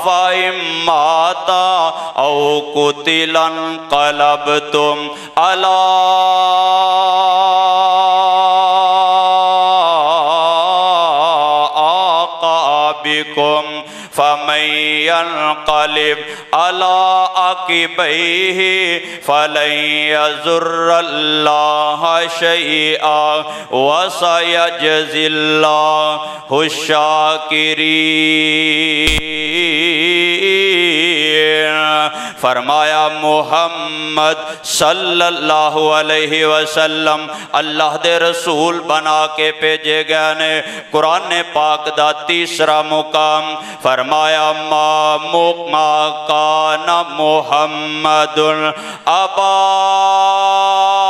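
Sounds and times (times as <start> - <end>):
man chanting melodic recitation: 0.0 - 51.0.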